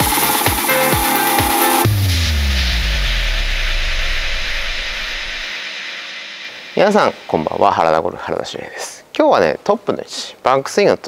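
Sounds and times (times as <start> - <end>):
hissing noise wash: 1.2 - 9.1
deep bass boom with pitch sweep: 1.8 - 5.5.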